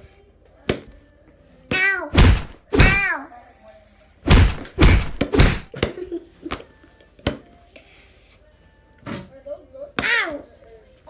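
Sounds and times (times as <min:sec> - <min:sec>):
doll thudding on floor: 0:02.2 - 0:03.1, 0:04.3 - 0:05.7.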